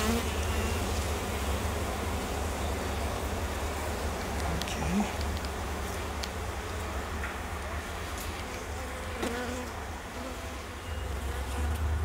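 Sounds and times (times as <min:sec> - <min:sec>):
bee buzzing past close: 0:00.0 - 0:03.4, 0:07.9 - 0:12.0
honey bees buzzing: 0:00.0 - 0:12.0.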